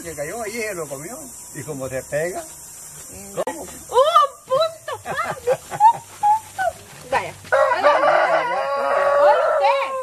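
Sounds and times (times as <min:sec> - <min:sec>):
rooster crowing: 0:07.5 - 0:10.0.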